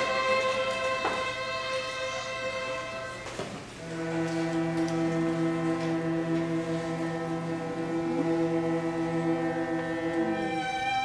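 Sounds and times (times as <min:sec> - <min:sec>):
string orchestra sustained chord: 0:03.8 - 0:11.0.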